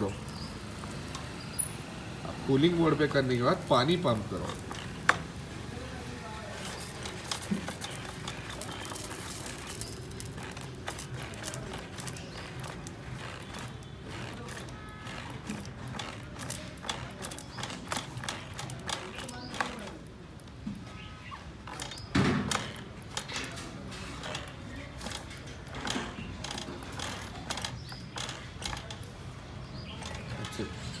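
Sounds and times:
hand pump clicks and knocks: 2.6 - 5.4, 6.6 - 20.8, 21.6 - 31.0.

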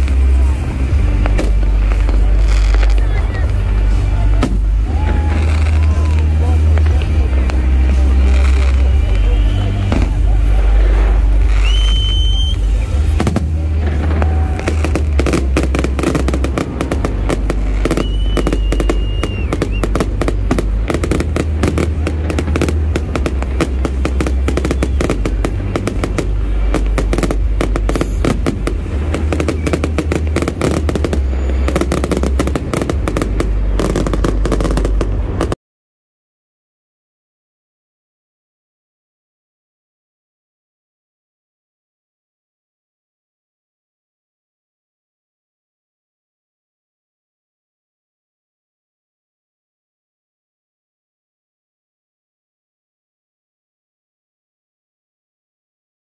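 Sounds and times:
crowd voices: 0.0 - 35.6
fireworks bursting and crackling: 0.0 - 35.6
loud bass-heavy music: 0.0 - 35.6.

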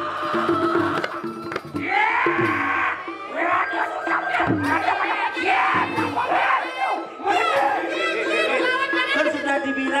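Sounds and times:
gamelan music: 0.0 - 10.0
people shouting: 1.8 - 9.2.

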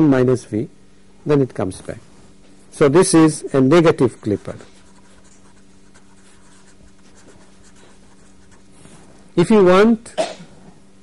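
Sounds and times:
steady low hum: 0.0 - 11.0
marker scratching on paper: 4.0 - 9.1.

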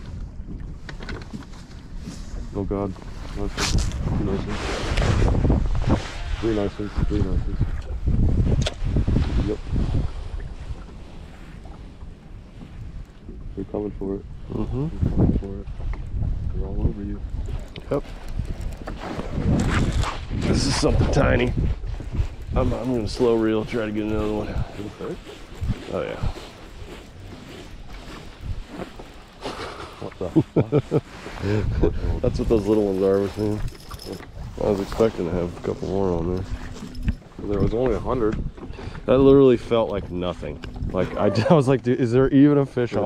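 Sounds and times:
waves slapping boat hull: 0.0 - 43.0
wind rumbling on microphone: 0.0 - 43.0.

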